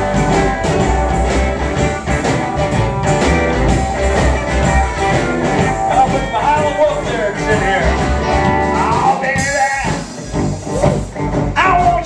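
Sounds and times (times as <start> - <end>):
electric guitar lead: 0.0 - 12.0
upright bass: 0.0 - 12.0.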